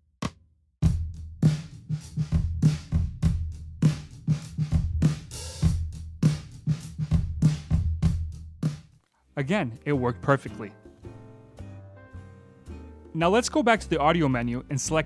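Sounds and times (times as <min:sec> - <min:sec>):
drum kit groove: 0:00.2 - 0:09.0.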